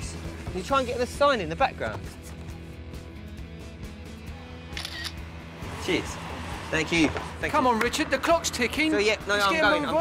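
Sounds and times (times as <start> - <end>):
background music: 0.0 - 10.0
camera shutter click: 4.7 - 5.2.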